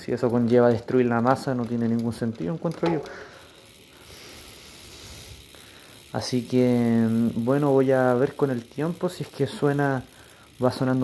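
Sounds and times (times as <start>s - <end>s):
bicycle hub faint whir: 0.0s - 11.0s.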